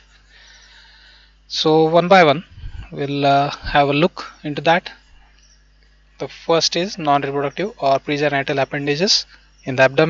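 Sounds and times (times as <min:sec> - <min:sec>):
faint soft hiss: 0:00.0 - 0:10.0
man lecturing: 0:01.5 - 0:05.0, 0:06.2 - 0:10.0.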